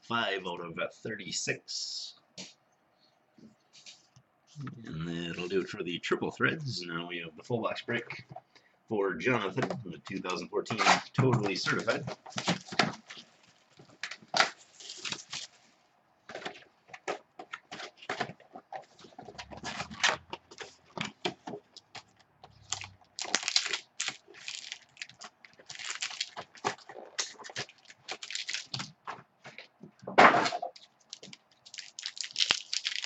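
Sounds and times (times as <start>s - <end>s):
crinkling cardboard and wrappers: 10.1s - 33.0s.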